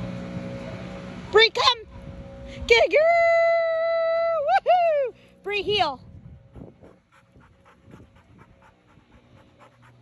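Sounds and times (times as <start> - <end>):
puppy panting: 6.5 - 10.0.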